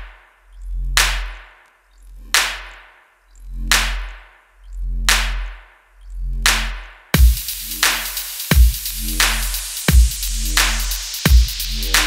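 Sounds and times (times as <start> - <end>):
deep sub-bass: 0.0 - 12.0
hard drum hit: 7.2 - 7.6, 8.5 - 12.0.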